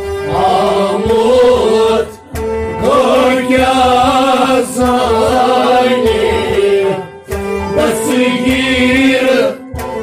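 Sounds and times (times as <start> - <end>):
man singing: 0.2 - 2.2, 2.8 - 9.7
drum beating: 0.3 - 9.1.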